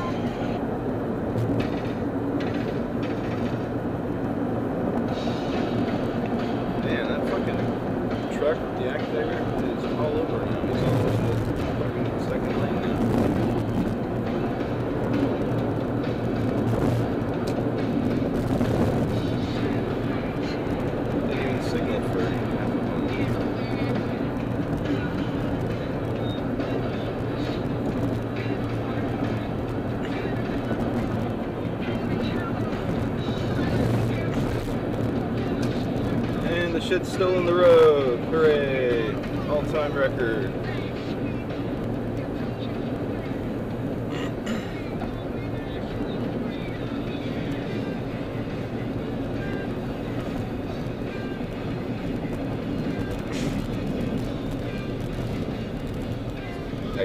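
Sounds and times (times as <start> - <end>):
low engine drone: 0.0 - 57.0.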